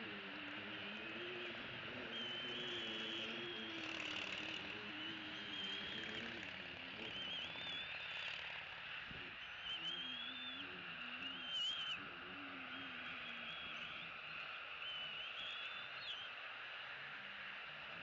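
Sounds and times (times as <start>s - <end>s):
steady outdoor hiss: 0.0s - 18.0s
eaglets whining calls: 0.9s - 8.5s, 9.4s - 12.0s.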